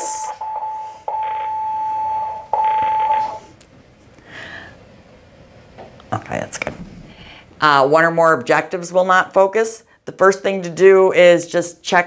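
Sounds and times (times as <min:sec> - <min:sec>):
electronic telephone ringer beeps: 0:00.4 - 0:03.4.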